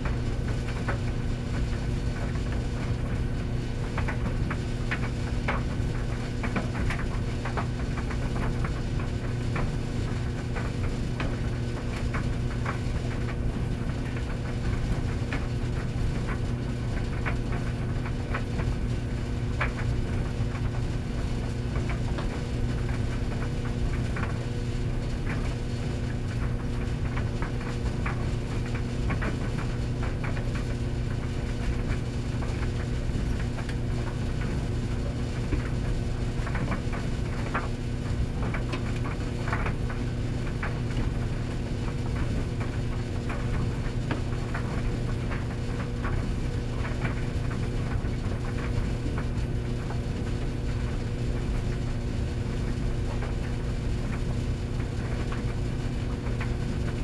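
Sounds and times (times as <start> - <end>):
tumble dryer motor hum: 0.0 - 57.0.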